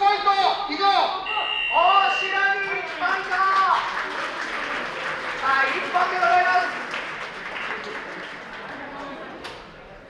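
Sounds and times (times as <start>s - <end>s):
man talking: 0.0s - 3.9s, 5.4s - 6.8s.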